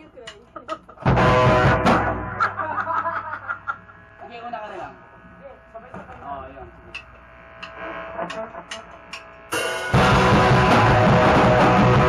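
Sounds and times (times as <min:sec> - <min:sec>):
guitar amplifier hum and buzz: 0:00.0 - 0:12.0
loud low band note: 0:01.1 - 0:12.0.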